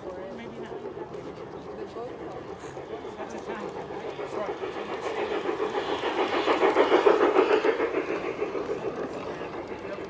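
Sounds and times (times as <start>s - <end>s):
model train clattering past: 0.0s - 10.0s.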